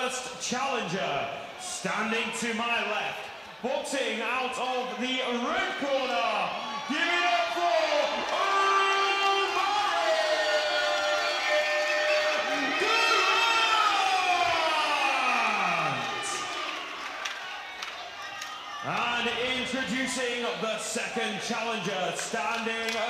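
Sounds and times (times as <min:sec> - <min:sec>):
crowd cheering: 0:00.0 - 0:23.0
announcer calling over loudspeaker: 0:18.8 - 0:22.8.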